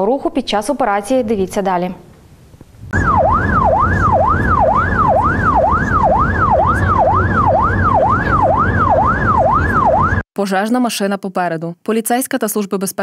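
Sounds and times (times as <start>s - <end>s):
road and engine rumble: 2.1s - 10.2s
siren yelping: 2.9s - 10.2s.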